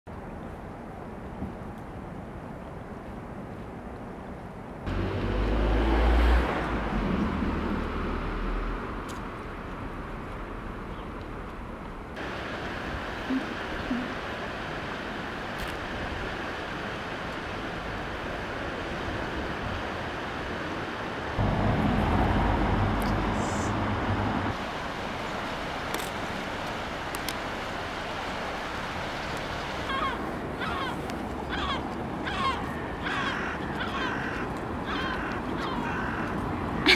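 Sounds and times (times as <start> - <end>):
low rumble of traffic: 0.1 - 36.9
steady background hiss: 12.1 - 21.4
low vehicle rumble: 21.4 - 24.6.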